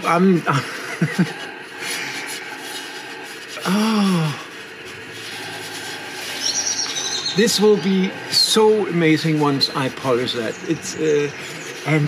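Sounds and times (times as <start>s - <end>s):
man's drawn-out vocal sound: 0.0s - 4.6s
gloves scraping ceramic bowl: 0.6s - 3.8s, 4.4s - 12.0s.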